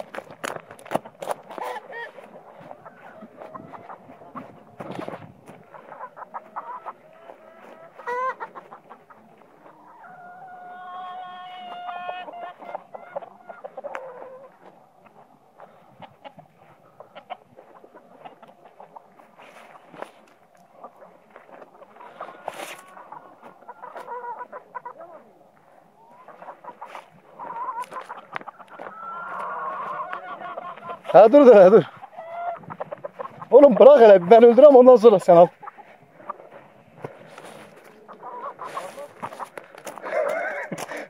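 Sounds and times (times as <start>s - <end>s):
chickens clucking: 0.0s - 41.0s
loud chicken call: 0.9s - 14.7s, 21.7s - 36.4s, 37.6s - 41.0s.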